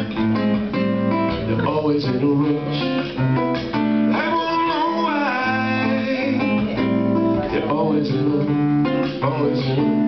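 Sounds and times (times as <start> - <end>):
strummed acoustic guitar: 0.0 - 10.0
man singing: 1.3 - 3.4, 4.0 - 10.0.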